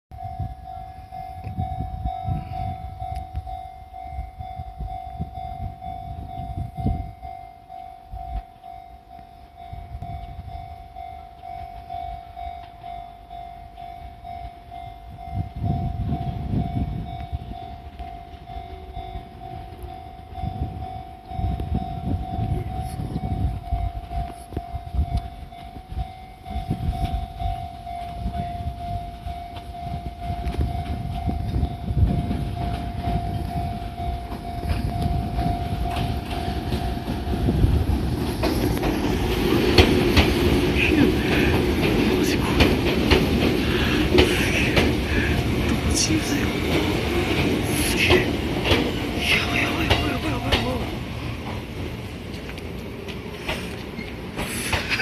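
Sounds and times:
electric trains rumbling: 0.1s - 55.0s.

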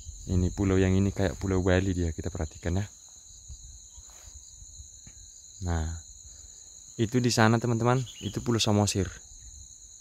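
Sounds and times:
shrill insect chorus: 0.0s - 10.0s.

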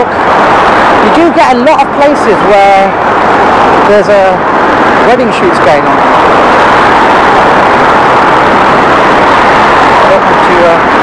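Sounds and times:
motor traffic hum: 0.0s - 11.0s.

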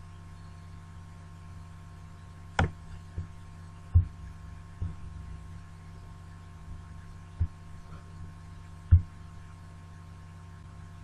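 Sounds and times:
low electrical hum: 0.0s - 11.0s
dull thumps: 2.6s - 5.1s, 8.9s - 9.2s.

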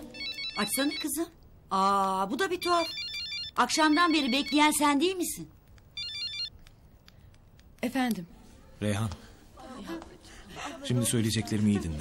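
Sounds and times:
phone ringtone beeps: 0.0s - 1.2s, 2.6s - 4.8s, 6.0s - 6.5s.

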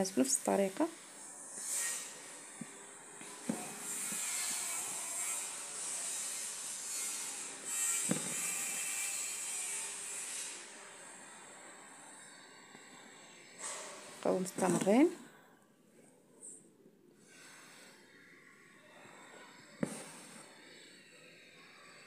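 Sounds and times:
thread rasping through fabric: 14.3s - 15.1s, 19.8s - 20.3s
needle and hoop knocks: 14.5s - 15.1s.

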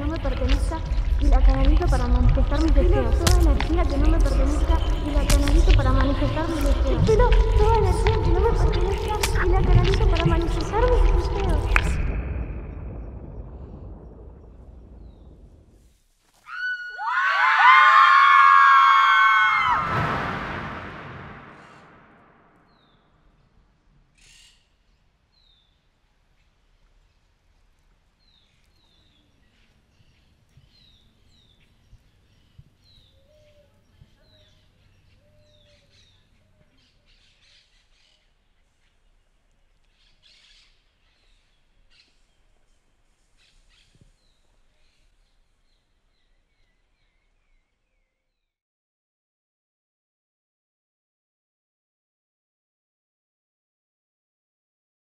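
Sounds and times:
deep boom: 0.0s - 15.8s, 19.6s - 22.7s
crowd screaming: 16.5s - 21.4s.

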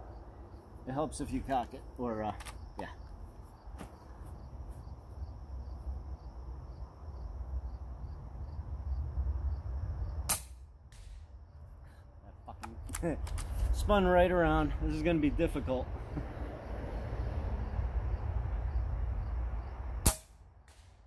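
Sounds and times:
air rifle shot crack: 10.3s - 11.3s, 20.0s - 21.0s.

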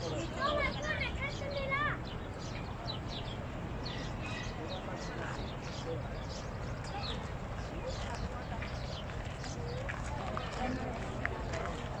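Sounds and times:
people talking in distance: 0.0s - 12.0s.

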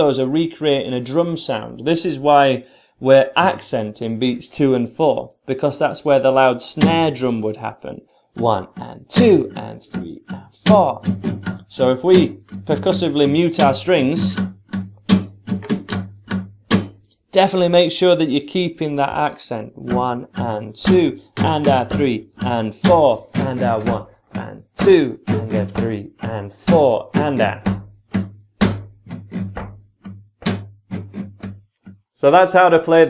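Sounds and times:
acoustic guitar strumming: 6.6s - 7.6s, 8.4s - 17.1s, 18.6s - 33.0s
percussive slap on guitar strings: 13.6s - 17.0s, 27.7s - 31.9s.

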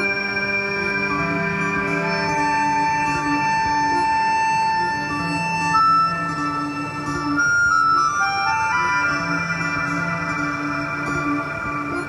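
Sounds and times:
synthesizer melody: 0.0s - 12.0s.

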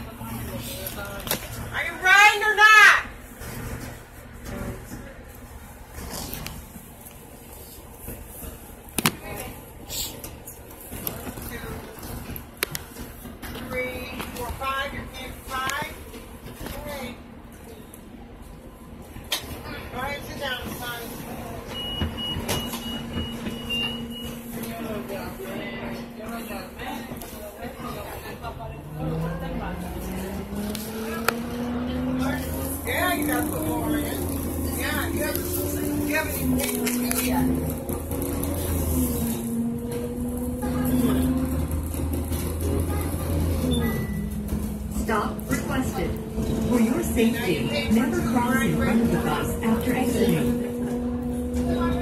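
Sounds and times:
bus rumbling: 0.0s - 52.0s
faint passenger voices: 0.0s - 52.0s.

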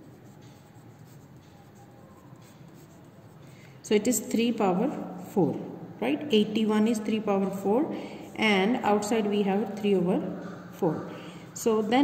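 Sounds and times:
pencil scratching on paper: 0.0s - 3.6s.

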